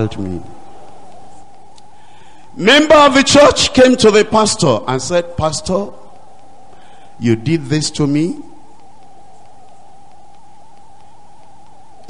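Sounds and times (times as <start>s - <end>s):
background hiss: 0.0s - 12.0s
constant mid-pitched tone: 0.0s - 12.0s.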